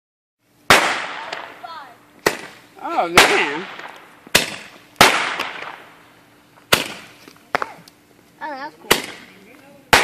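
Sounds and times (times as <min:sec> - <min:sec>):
firework bang: 0:00.7 - 0:06.0, 0:06.7 - 0:07.8.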